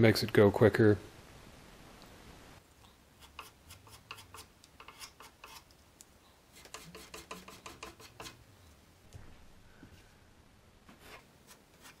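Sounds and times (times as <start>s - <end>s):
putty knife scraping wood filler: 3.2s - 5.7s, 6.6s - 8.4s.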